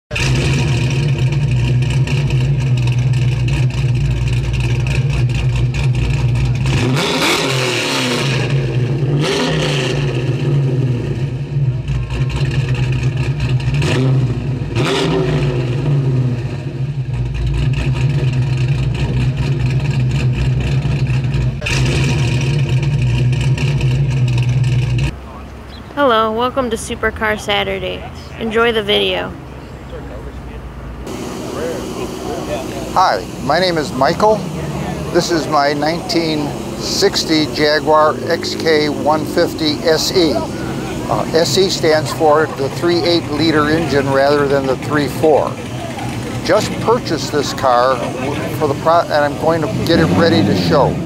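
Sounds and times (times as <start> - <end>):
car engine revving: 0.1 - 51.0.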